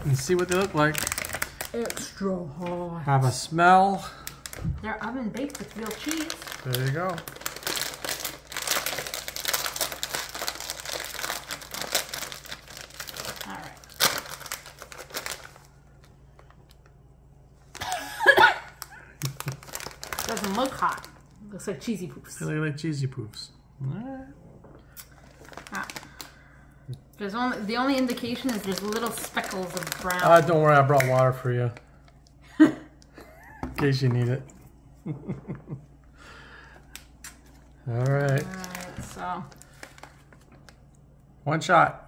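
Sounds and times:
snack bag crackling: 0.0s - 2.2s, 4.0s - 17.0s, 17.6s - 21.4s, 24.9s - 26.6s, 27.5s - 32.4s, 37.0s - 41.0s.

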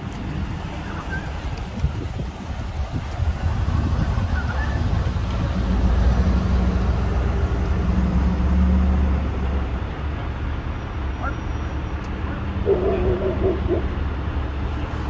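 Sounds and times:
vehicle engines driving past: 0.0s - 15.0s.

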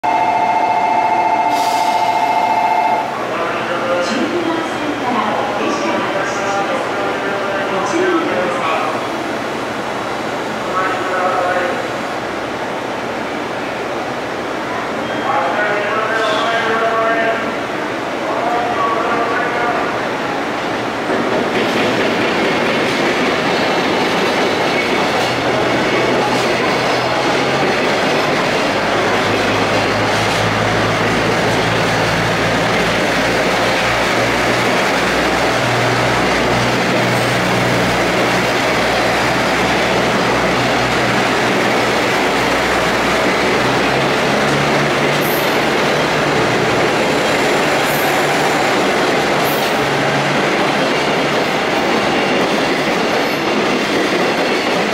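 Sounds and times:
diesel train engine drone: 0.0s - 54.9s
wheel and rail noise: 20.6s - 54.9s.

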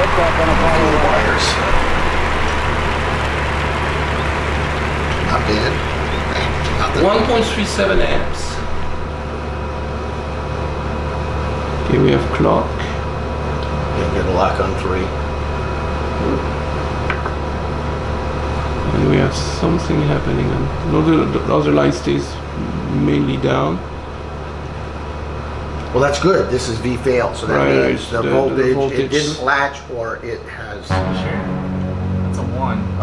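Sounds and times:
electronic equipment fan hum: 0.0s - 12.6s
faint chirp: 2.9s - 7.4s
low hum: 30.9s - 33.0s.

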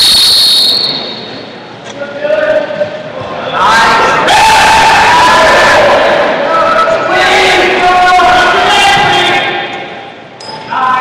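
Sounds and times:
referee's whistle blast: 0.0s - 1.5s.

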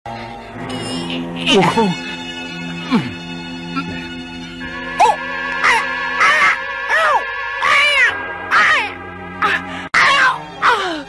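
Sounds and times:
background music: 0.1s - 11.0s.

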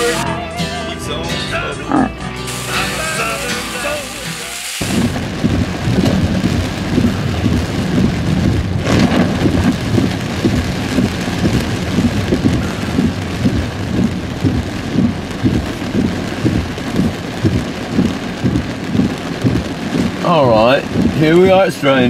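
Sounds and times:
heavy rain on car roof: 0.0s - 0.2s, 2.5s - 22.0s
background music: 0.0s - 4.9s
loud crash: 2.5s - 13.1s.

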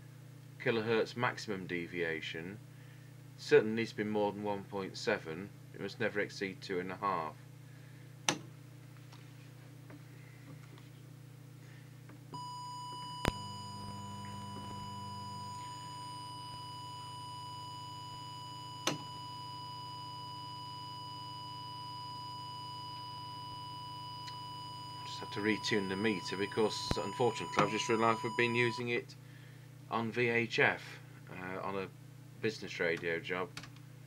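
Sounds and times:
low electrical hum: 0.0s - 34.0s
steady test tone: 12.4s - 29.0s.

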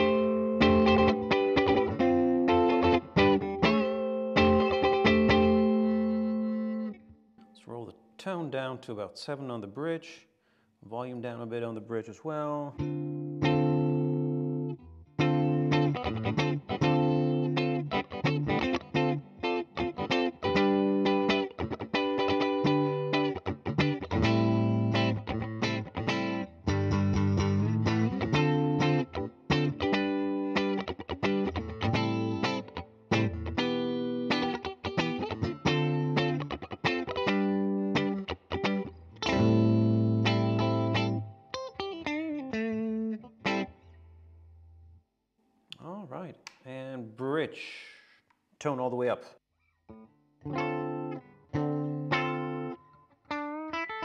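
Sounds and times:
electric guitar through amplifier: 0.0s - 7.2s, 12.8s - 44.7s, 49.9s - 54.0s.

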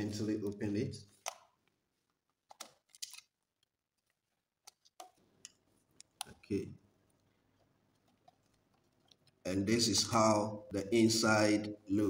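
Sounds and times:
screwdriver clicks and scrapes: 2.5s - 3.3s.

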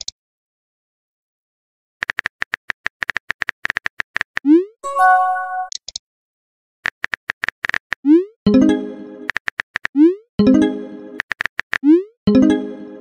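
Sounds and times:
bright chime: 4.8s - 5.7s.

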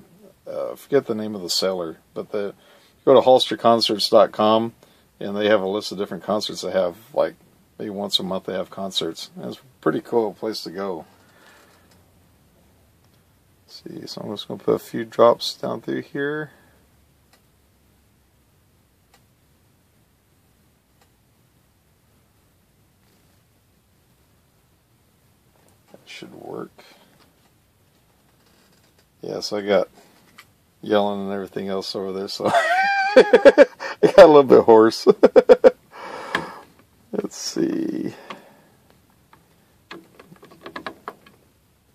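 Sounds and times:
man laughing: 32.4s - 36.6s
plastic part scraping and clicking: 39.9s - 41.4s.

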